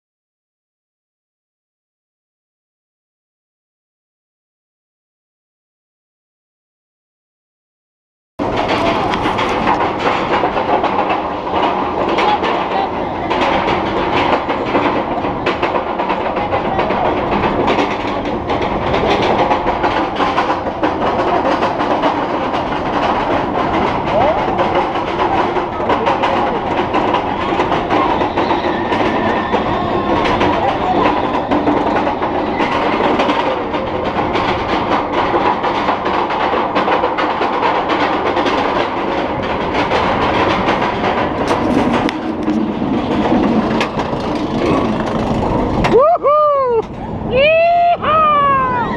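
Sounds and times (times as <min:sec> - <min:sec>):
roller coaster chain lift clanking: 0:08.4 - 0:48.9.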